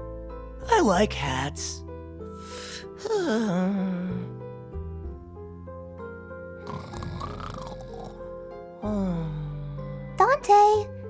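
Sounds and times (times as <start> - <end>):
gentle background music: 0.0 - 11.0
cartoon snore: 6.6 - 8.2.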